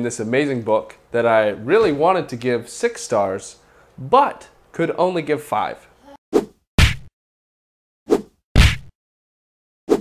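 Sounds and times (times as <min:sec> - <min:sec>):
punch hits: 0:06.8 - 0:07.1, 0:08.6 - 0:08.9.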